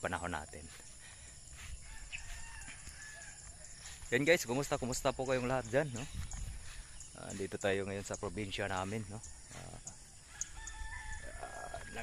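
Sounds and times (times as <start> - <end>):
distant rooster crowing: 1.8 - 3.8, 9.4 - 12.0.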